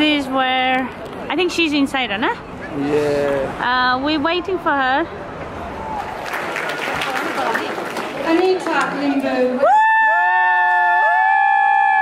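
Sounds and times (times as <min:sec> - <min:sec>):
people cheering woo: 0:05.7 - 0:06.5, 0:09.6 - 0:12.0.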